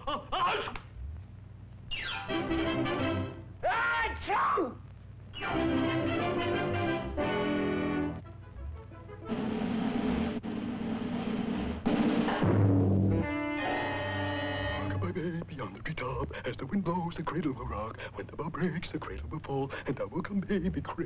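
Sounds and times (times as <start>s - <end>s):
orchestral cartoon music: 2.2s - 3.4s, 5.4s - 10.0s
brass: 2.3s - 3.4s, 5.4s - 10.4s
timpani: 5.4s - 15.0s.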